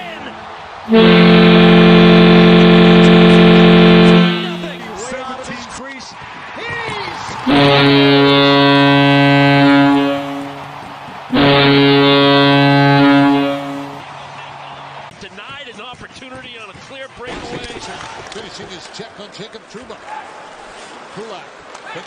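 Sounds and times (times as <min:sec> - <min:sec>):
crowd noise and voices: 0:00.0 - 0:22.0
deep goal horn blasts: 0:00.9 - 0:05.1, 0:07.5 - 0:14.0.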